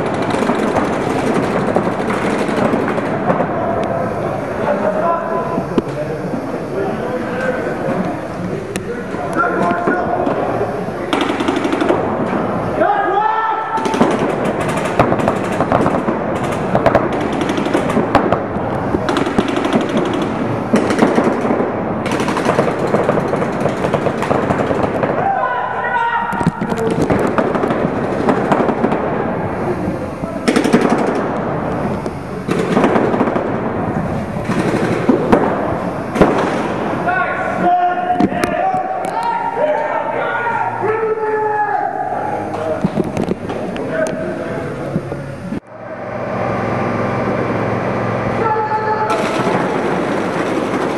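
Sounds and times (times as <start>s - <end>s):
paintball guns firing rapidly: 0.0s - 4.8s, 9.4s - 13.0s, 13.6s - 25.8s, 26.4s - 31.8s, 32.4s - 37.4s, 49.1s - 50.9s
people shouting: 12.8s - 14.2s, 25.1s - 27.0s, 37.1s - 42.5s, 48.3s - 50.0s.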